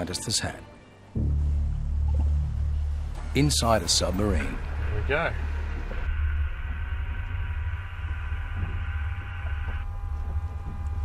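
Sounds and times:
hum of steady tones: 1.2 - 11.0
steady low rumble: 1.2 - 11.0.

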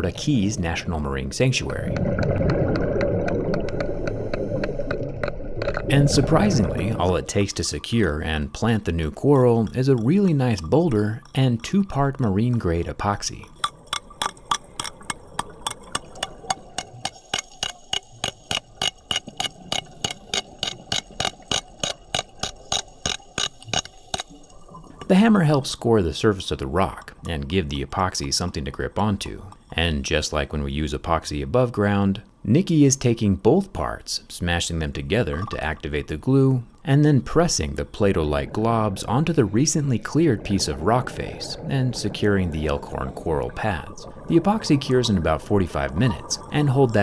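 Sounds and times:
hammer tapping rock underwater: 13.6 - 24.3.

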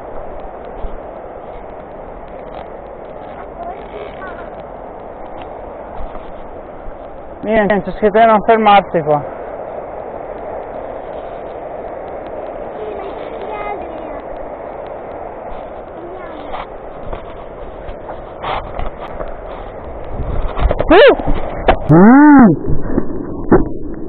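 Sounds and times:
steady rushing noise: 0.0 - 24.0
person whooping: 20.9 - 21.2, 21.9 - 22.6.

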